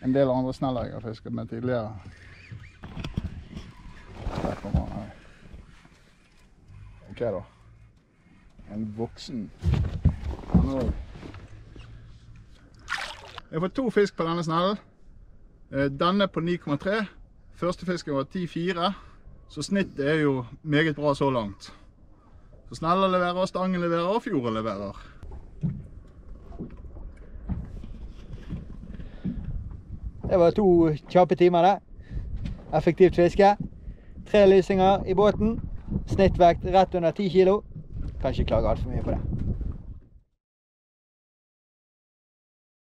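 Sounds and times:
water lapping against boat hull: 9.8 - 13.5, 25.1 - 31.3.

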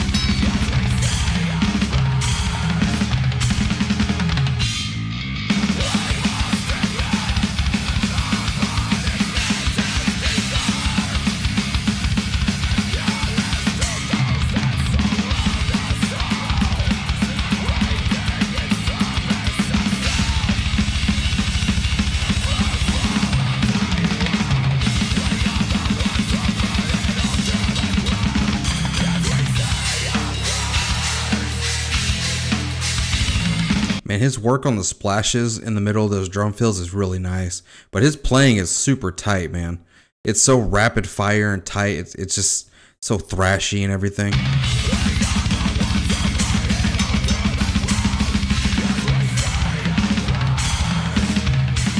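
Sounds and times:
drum kit played fast: 0.0 - 34.1, 44.3 - 51.9
heavy metal song: 0.0 - 34.1, 44.3 - 51.9.

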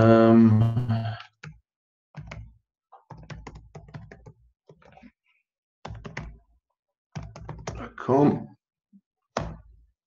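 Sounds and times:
typing on computer keyboard: 2.2 - 5.0, 5.9 - 6.4, 7.2 - 7.8.

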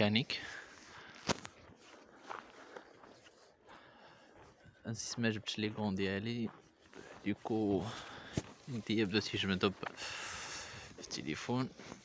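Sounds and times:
footsteps on snow: 0.0 - 12.0.

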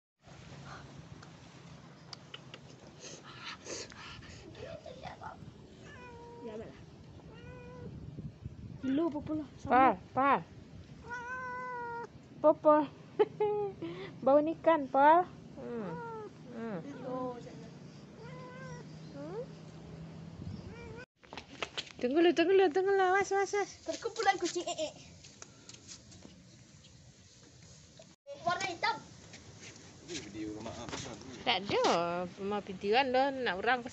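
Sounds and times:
kittens meowing: 11.0 - 12.1, 18.2 - 19.3.

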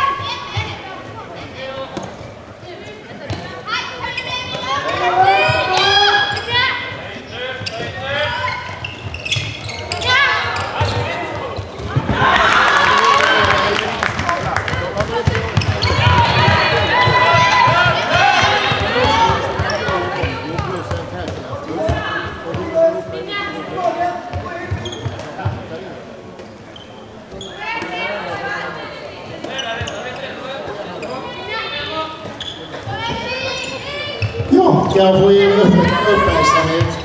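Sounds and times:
ball bouncing on hall floor: 14.1 - 22.7, 34.2 - 37.0.

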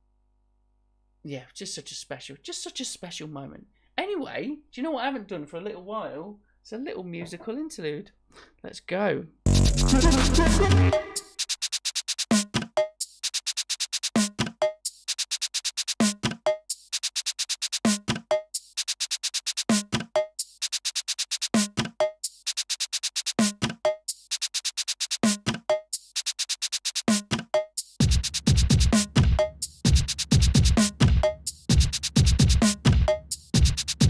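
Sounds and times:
drum machine and synth loop: 9.5 - 34.0.

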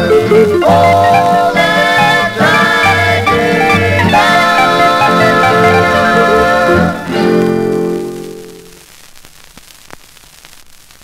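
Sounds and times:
record clicks and crackles: 0.0 - 3.0, 3.6 - 11.0
record surface hiss: 0.0 - 11.0.

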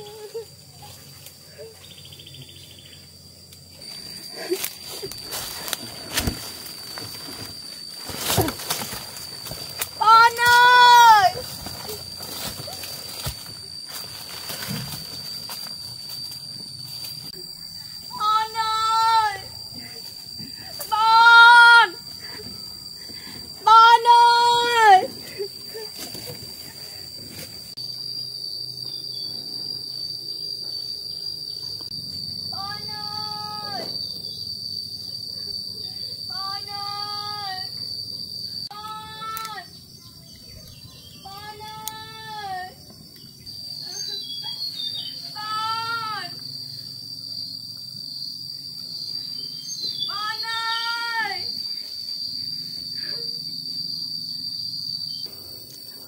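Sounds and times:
high insect buzz: 0.0 - 56.0
woman calling out: 10.0 - 11.5, 18.1 - 20.0, 20.7 - 22.4, 23.6 - 25.2, 32.5 - 34.0, 36.3 - 37.7, 38.7 - 39.7, 41.2 - 42.8, 45.1 - 46.4, 50.0 - 51.6.

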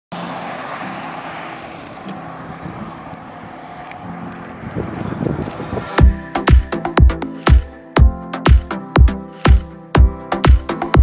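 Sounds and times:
car road and wind noise: 0.1 - 8.0.

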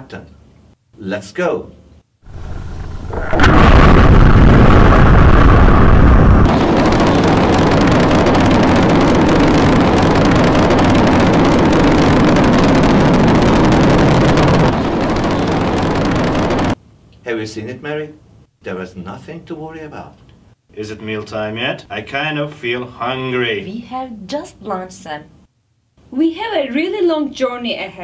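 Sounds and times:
rocket launch roar: 2.3 - 16.8.

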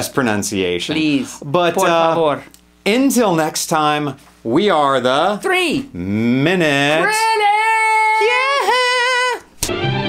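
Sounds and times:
outro music: 9.6 - 10.0.

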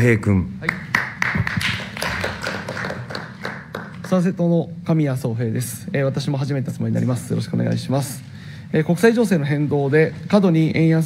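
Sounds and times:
people clapping: 0.6 - 4.3.

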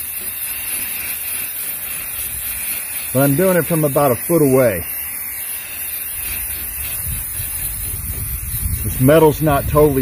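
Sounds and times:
spray can hissing: 0.0 - 10.0.

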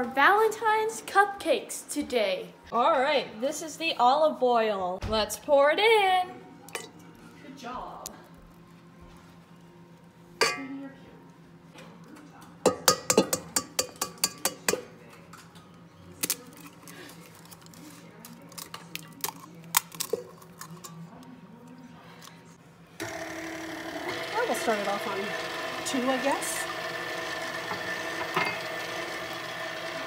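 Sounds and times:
metal bowl knocking and clinking: 10.4 - 10.8, 12.7 - 14.9, 28.2 - 28.6
stand mixer motor whirring: 23.0 - 30.0.

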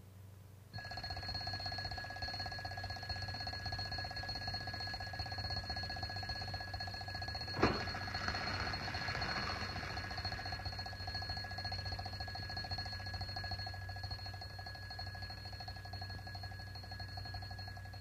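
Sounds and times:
film soundtrack hum: 0.0 - 18.0
alarm clock bell ringing: 0.8 - 18.0.

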